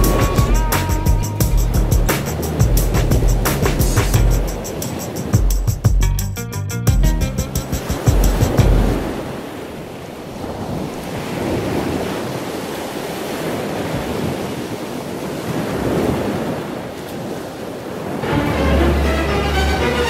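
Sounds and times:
music: 0:00.0 - 0:09.1, 0:18.2 - 0:20.0
ocean surf washing onto beach: 0:01.9 - 0:05.8, 0:07.6 - 0:20.0.

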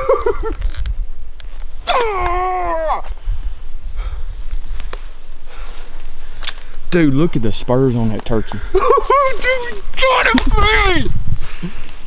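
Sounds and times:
steady low rumble: 0:00.0 - 0:12.0
footsteps in leaf litter: 0:04.3 - 0:06.8
man exclaiming: 0:08.4 - 0:11.2.

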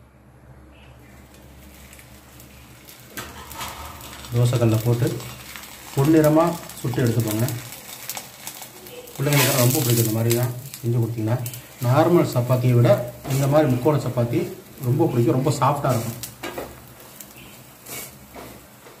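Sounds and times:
faint background hiss: 0:00.0 - 0:19.0
man speaking: 0:04.3 - 0:05.3, 0:06.0 - 0:07.7, 0:09.2 - 0:16.2.

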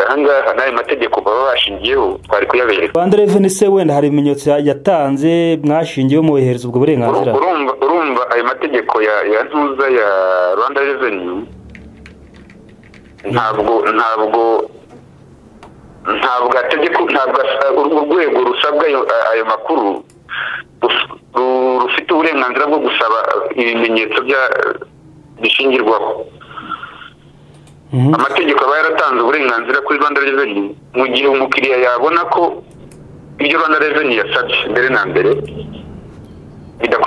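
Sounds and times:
person talking: 0:00.0 - 0:11.6, 0:13.2 - 0:14.8, 0:27.9 - 0:32.7.

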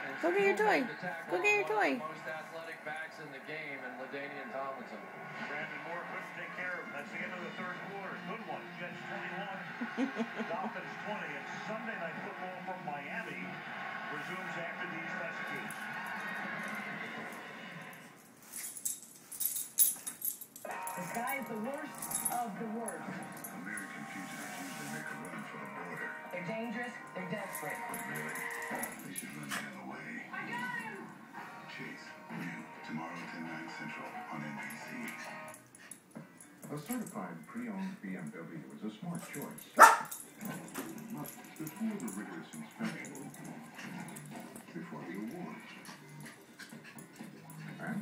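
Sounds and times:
television sound: 0:00.0 - 0:48.0.

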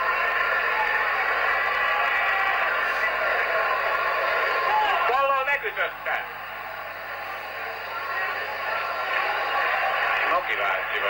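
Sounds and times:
crowd voices din: 0:00.0 - 0:11.0.

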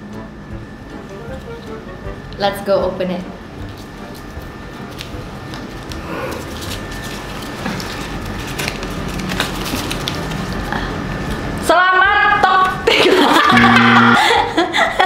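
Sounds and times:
faint background music: 0:00.0 - 0:14.3
paper crinkling and rustling: 0:03.7 - 0:11.5.

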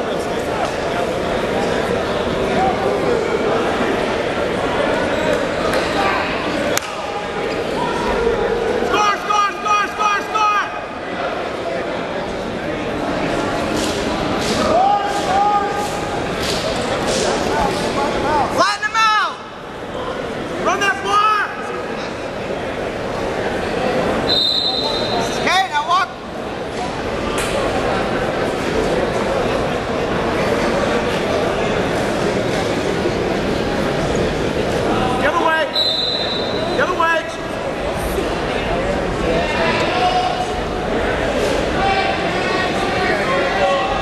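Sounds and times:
gym background noise: 0:00.0 - 0:44.0
hubbub of voices: 0:00.0 - 0:44.0
high-pitched whistle: 0:24.3 - 0:25.2, 0:35.7 - 0:36.7.

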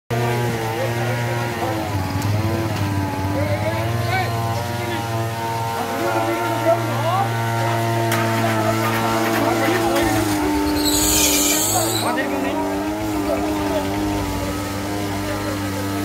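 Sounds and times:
engine running steadily: 0:00.1 - 0:16.0
people's voices: 0:00.2 - 0:16.0.

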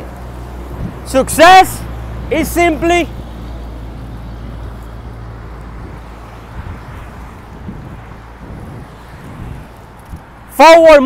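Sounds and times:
hum of passing cars: 0:00.0 - 0:11.0.

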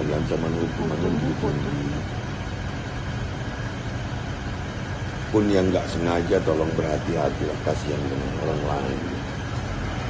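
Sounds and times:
man speaking: 0:00.0 - 0:02.1, 0:05.3 - 0:09.3
low background rumble: 0:00.0 - 0:10.0.

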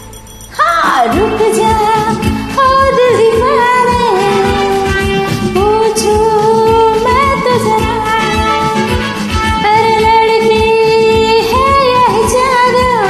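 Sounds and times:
karaoke backing track: 0:00.0 - 0:13.0
woman singing: 0:00.0 - 0:13.0.

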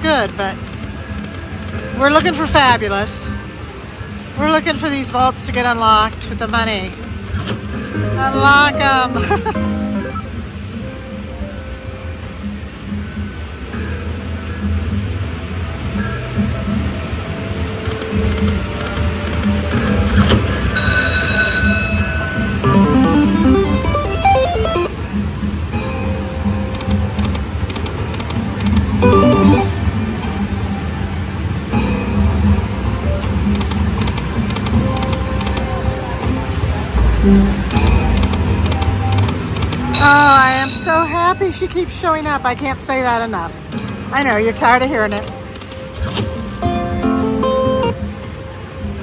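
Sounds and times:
slot machine music loop: 0:20.7 - 0:25.1, 0:29.0 - 0:30.0
bright chime jingles: 0:39.9 - 0:41.8.

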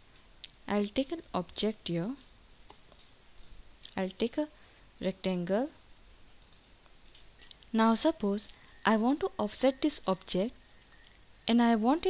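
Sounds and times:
keyboard and mouse clicks: 0:02.2 - 0:04.0, 0:06.4 - 0:07.7.

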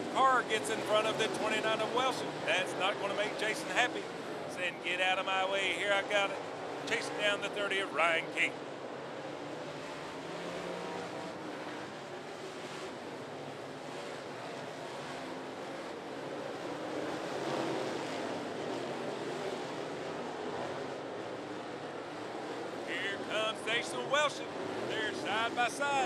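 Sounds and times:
race car engines at speed: 0:00.0 - 0:26.0.

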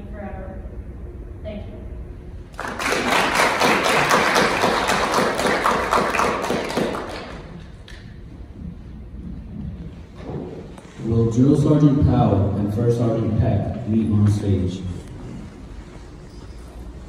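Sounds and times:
audience applauding: 0:02.5 - 0:08.0.

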